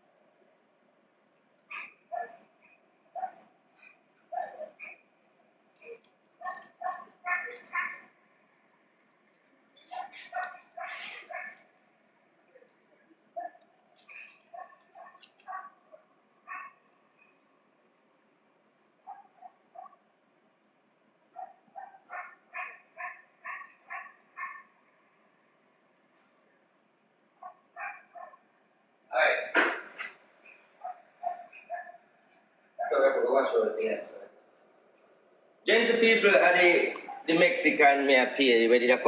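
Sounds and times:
dog barking: 0:01.7 - 0:03.5, 0:04.3 - 0:05.0, 0:05.8 - 0:08.1, 0:09.9 - 0:11.7, 0:13.4 - 0:16.8, 0:19.0 - 0:20.0, 0:21.3 - 0:24.7, 0:27.4 - 0:28.5, 0:30.8 - 0:32.1, 0:32.8 - 0:33.1, 0:37.0 - 0:37.3.

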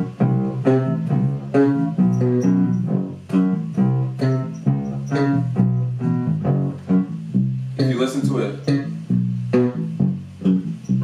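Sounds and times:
plucked bass line: 0:00.0 - 0:11.0.

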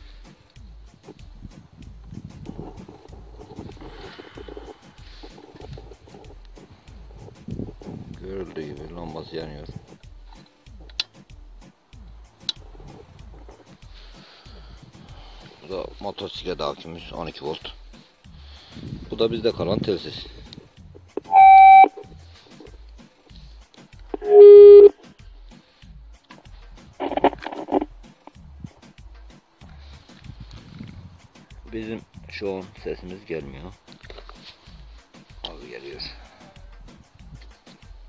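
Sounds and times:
loud steady beep: 0:21.3 - 0:22.0, 0:24.2 - 0:24.9.

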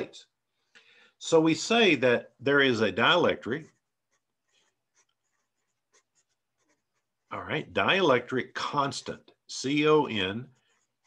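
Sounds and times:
pencil writing on paper: 0:03.0 - 0:07.6, 0:10.1 - 0:11.0.

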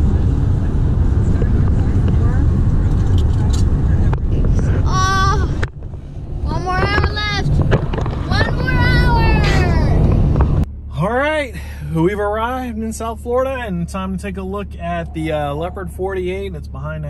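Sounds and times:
voices: 0:00.0 - 0:05.6, 0:06.4 - 0:10.2, 0:10.9 - 0:17.0
car cabin road rumble: 0:00.0 - 0:17.0.

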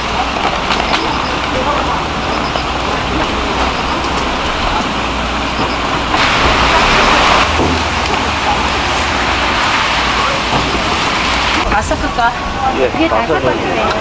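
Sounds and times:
food steamer hissing: 0:06.2 - 0:11.2.

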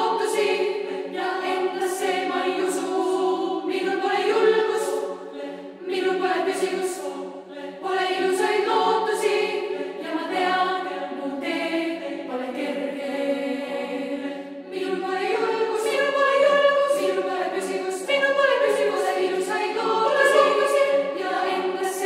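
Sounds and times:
female choir singing: 0:00.0 - 0:22.0.

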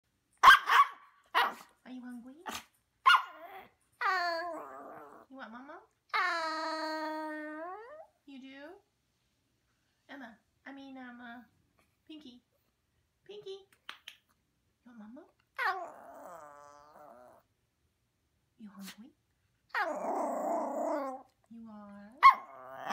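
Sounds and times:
small dog barking: 0:00.4 - 0:01.8, 0:02.5 - 0:03.7, 0:22.2 - 0:22.9
puppy moaning call: 0:03.3 - 0:05.3, 0:15.6 - 0:17.4, 0:19.7 - 0:21.4, 0:22.2 - 0:22.9.

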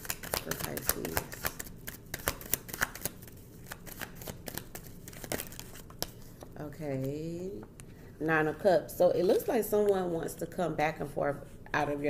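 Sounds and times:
cards shuffling clicks: 0:00.0 - 0:06.5.

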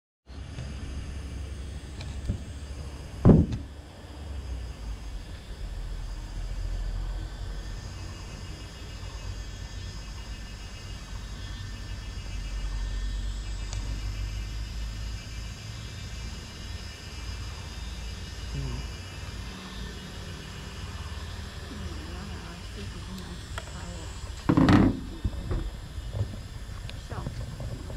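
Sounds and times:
low rumble: 0:21.2 - 0:27.9
camera knocking on car roof: 0:24.4 - 0:26.4.

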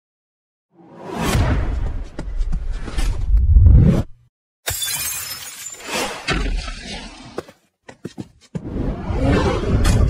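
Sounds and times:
glass shattering: 0:04.7 - 0:06.3.

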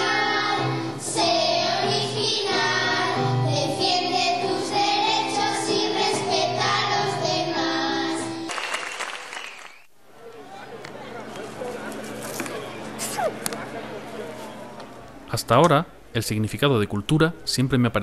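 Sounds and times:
children singing together: 0:00.0 - 0:08.5.

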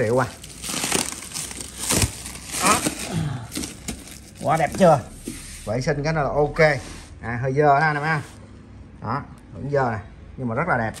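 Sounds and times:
plastic wrapping crinkling: 0:00.0 - 0:05.3.

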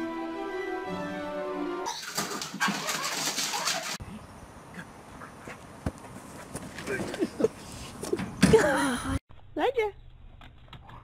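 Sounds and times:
dog scrabbling at door: 0:01.9 - 0:04.0.

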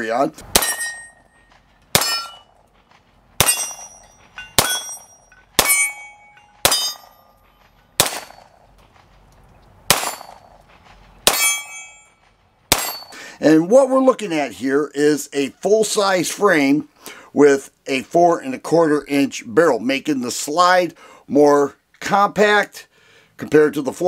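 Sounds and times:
pistol shots: 0:00.5 - 0:01.1, 0:01.9 - 0:02.4, 0:03.4 - 0:04.0, 0:04.6 - 0:07.2, 0:08.0 - 0:08.6, 0:09.9 - 0:10.6, 0:11.2 - 0:11.8, 0:12.7 - 0:13.1
metallic ring of steel target: 0:00.5 - 0:02.6, 0:03.4 - 0:08.7, 0:09.9 - 0:13.2.

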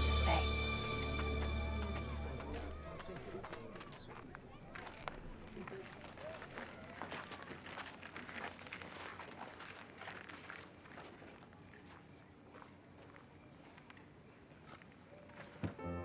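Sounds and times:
footsteps on straw: 0:05.8 - 0:14.0.

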